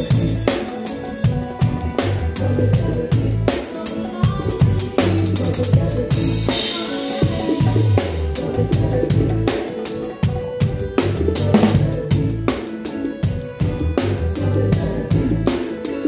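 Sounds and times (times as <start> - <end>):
live band music: 0.0 - 16.0.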